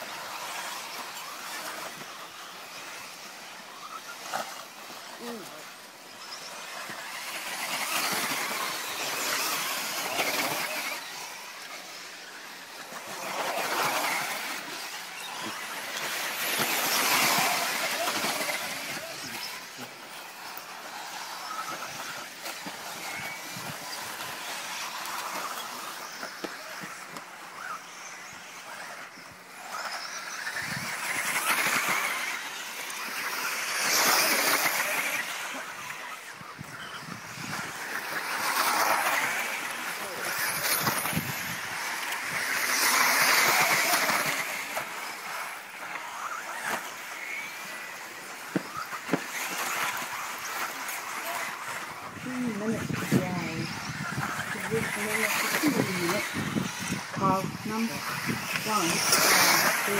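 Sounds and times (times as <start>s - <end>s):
electric rc cars whining: 0.0s - 59.9s
tyres scrabbling on dirt: 0.0s - 59.9s.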